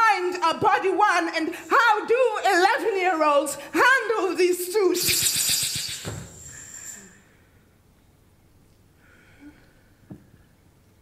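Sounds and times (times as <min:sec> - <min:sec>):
loud hissing rush with rattle: 0:05.0 - 0:07.1.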